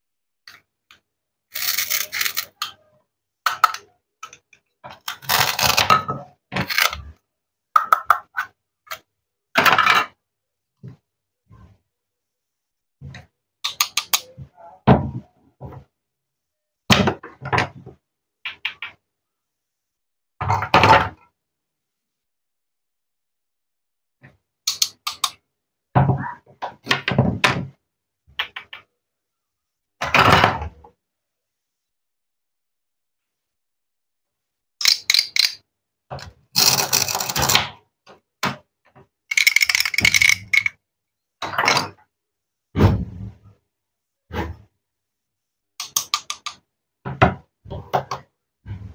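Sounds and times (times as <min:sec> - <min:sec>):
plastic toys clattering in crate: 0:36.6 - 0:37.5, 0:39.3 - 0:40.7.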